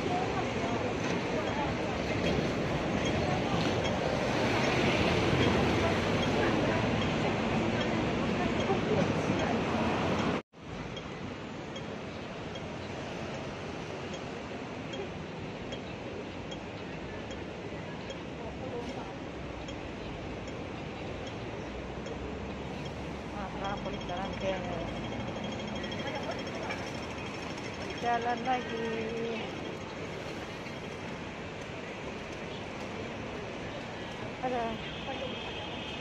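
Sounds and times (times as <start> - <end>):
crossing signal ticking: 0.0 - 15.9, 16.5 - 18.3, 19.6 - 30.0
pedestrians talking: 0.0 - 36.0
street traffic: 0.0 - 36.0.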